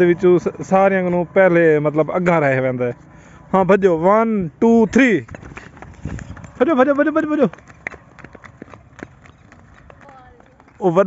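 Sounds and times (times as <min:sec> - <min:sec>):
footfalls of running people: 0:00.0 - 0:11.0.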